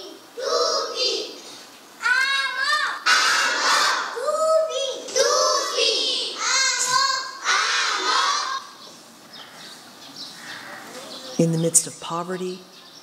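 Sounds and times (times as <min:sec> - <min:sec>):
children's voices over speakers: 0:00.0 - 0:08.9, 0:10.3 - 0:13.0.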